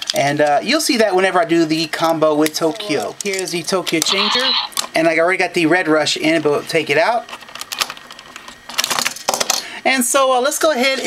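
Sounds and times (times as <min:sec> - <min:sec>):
plastic toy parts clicking: 0:02.0 - 0:04.9, 0:07.3 - 0:09.6.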